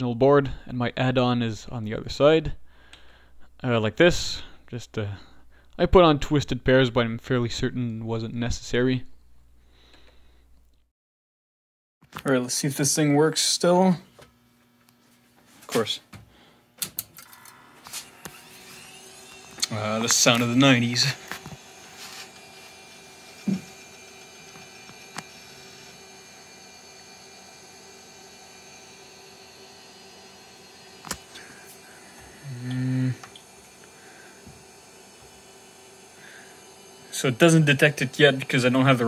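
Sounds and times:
motors spinning up with whine: 17.0 - 39.0
instrument hum and hiss: 31.0 - 35.3.

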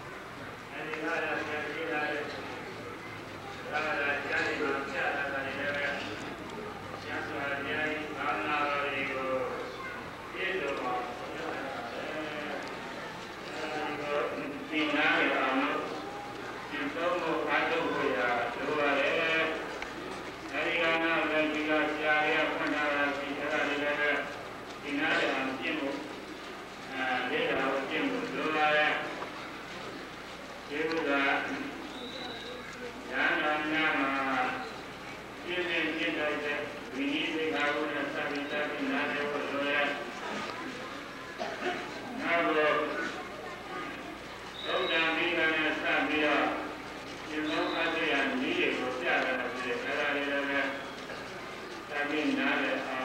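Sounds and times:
man speaking: 0.7 - 2.4, 3.6 - 6.4, 7.0 - 9.7, 10.3 - 19.9, 20.5 - 26.1, 26.9 - 29.3, 30.7 - 31.9, 33.1 - 34.8, 35.4 - 40.5, 41.4 - 43.9, 44.5 - 51.0, 51.9 - 53.0.

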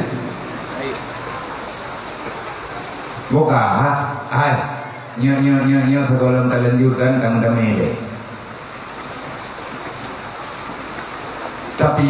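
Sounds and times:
hall room noise: 0.0 - 12.0.

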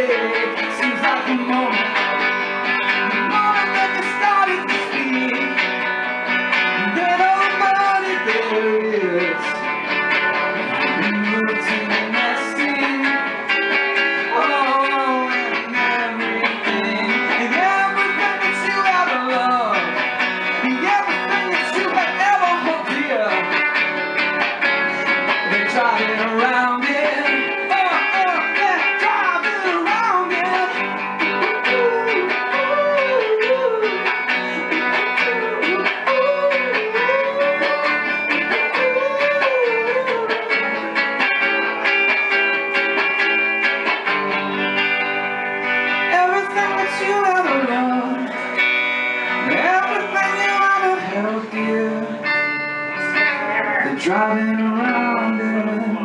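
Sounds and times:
surf rock electric guitar: 0.0 - 56.0.

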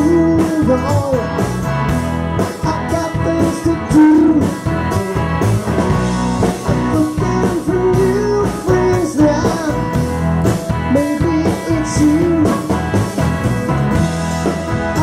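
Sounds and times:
live rock band playing: 0.0 - 15.0.

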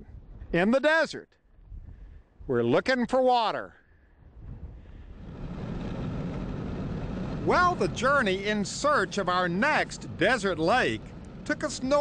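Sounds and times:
car engine and road rumble: 5.2 - 12.0.

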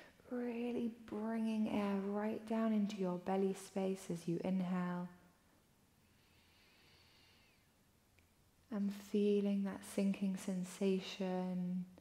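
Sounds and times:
slow breath through the nose: 6.0 - 7.7.

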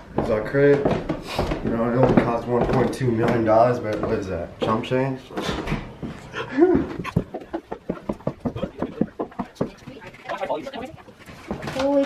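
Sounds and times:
footsteps on wooden stairs: 0.0 - 12.0.

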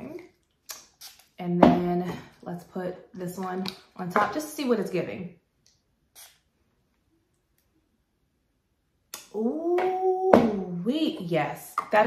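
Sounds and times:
spray bottle spritz: 6.2 - 6.4.

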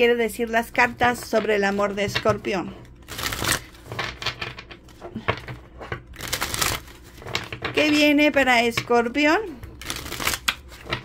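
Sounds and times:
cards being shuffled: 0.9 - 8.0, 9.6 - 11.0.

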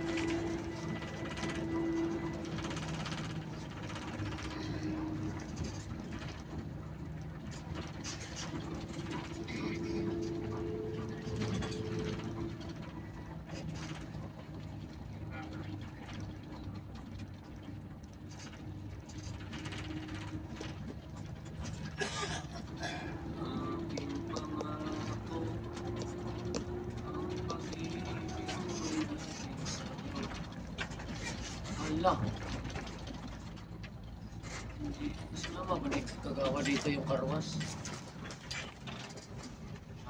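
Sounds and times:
road noise: 0.0 - 40.0
vehicle engine drone: 0.0 - 40.0.

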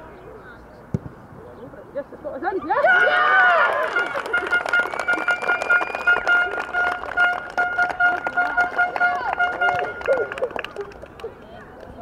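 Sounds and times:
hands clapping: 3.6 - 12.0.

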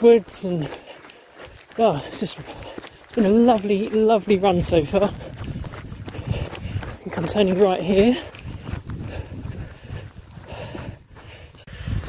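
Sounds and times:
footsteps on grass: 0.0 - 12.0.

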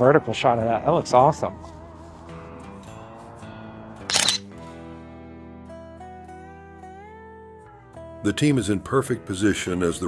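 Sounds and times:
background music with held notes: 0.0 - 10.0
camera shutter clicks: 4.1 - 4.5.

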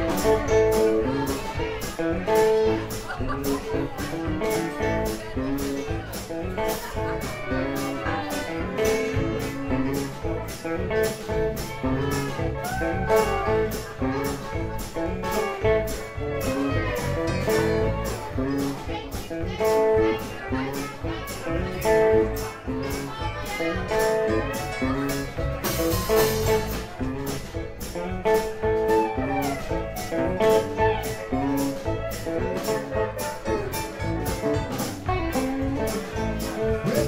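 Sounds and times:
live rock band playing: 0.0 - 37.0.

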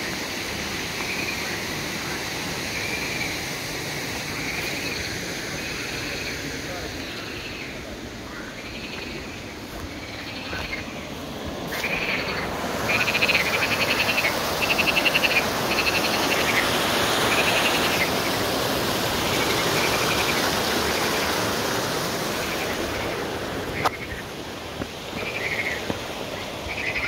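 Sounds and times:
frogs croaking and trilling: 0.0 - 27.0
water rushing in a channel: 0.0 - 27.0.

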